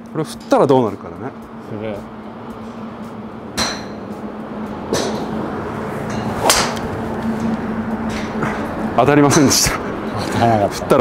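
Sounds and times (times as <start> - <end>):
steady low hum: 0.0 - 11.0
golf driver striking ball: 3.6 - 4.0, 6.2 - 7.0.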